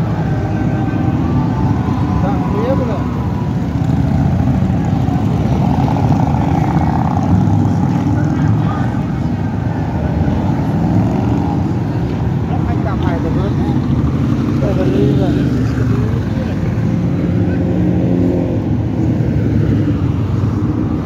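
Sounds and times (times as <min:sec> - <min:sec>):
motorcycle engines passing: 0:00.0 - 0:21.0.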